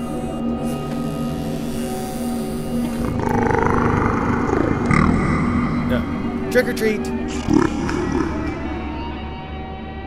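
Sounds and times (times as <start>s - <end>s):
door creaking open: 0.0s - 5.0s, 7.3s - 8.0s
background music: 0.0s - 10.0s.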